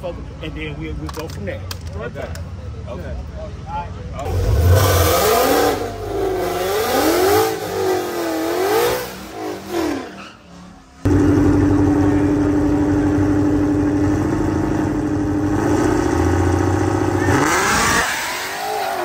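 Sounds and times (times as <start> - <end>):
car engine revving: 4.2 - 10.2, 11.1 - 19.0
cars accelerating away: 4.2 - 10.2, 11.0 - 19.0
drag car engines at high revs: 4.2 - 19.0.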